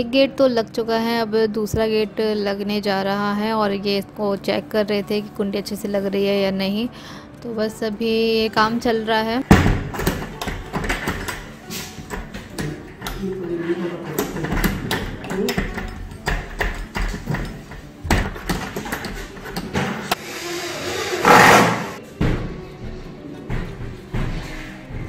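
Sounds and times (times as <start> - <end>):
background music: 0.0 - 25.0
barrel bolt clacking: 9.5 - 20.2.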